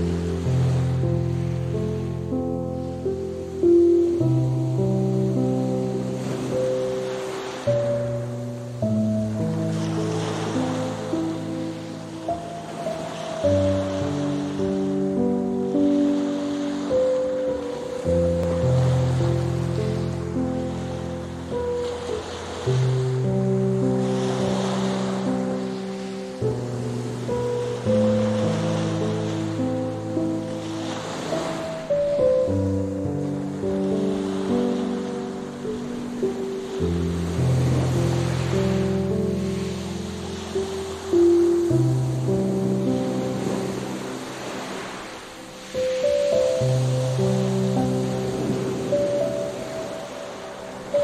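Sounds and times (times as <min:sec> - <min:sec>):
ocean waves washing onto shore: 0:00.0 - 0:51.0
soft relaxation music: 0:00.0 - 0:51.0.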